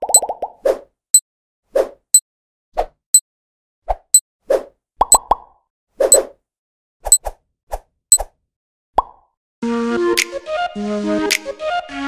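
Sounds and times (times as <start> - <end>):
cartoon pop sound effects: 5.0 - 5.5.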